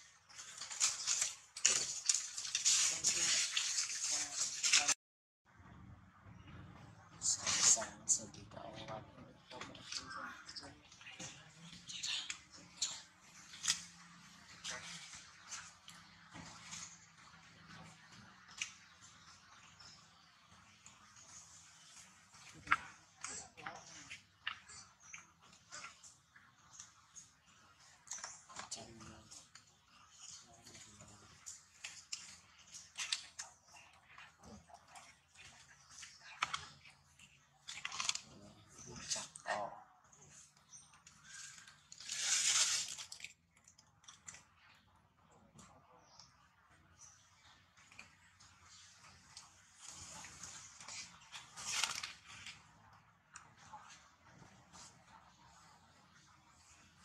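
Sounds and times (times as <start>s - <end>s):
rustling: 0.0s - 5.0s, 40.2s - 44.4s, 47.8s - 57.0s.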